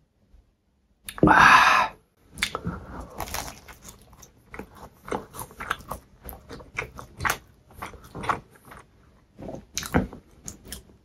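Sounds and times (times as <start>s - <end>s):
chewing crusty pastry: 2.2s - 11.0s.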